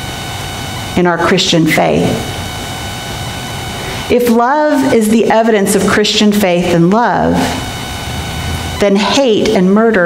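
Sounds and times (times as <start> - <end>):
faint high steady tones: 0.0 - 10.0
room noise hiss: 0.0 - 10.0.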